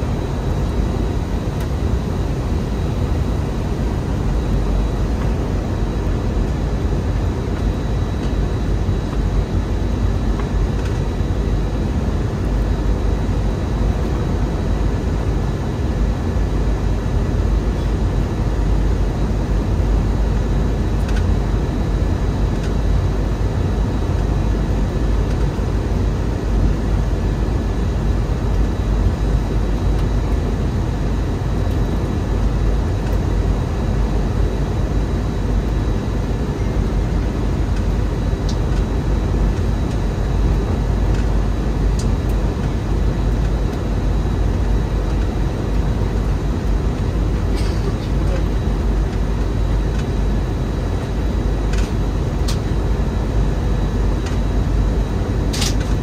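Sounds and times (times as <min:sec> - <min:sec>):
airplane cabin engine rumble: 0:00.0 - 0:56.0
faint steady whine: 0:00.0 - 0:56.0.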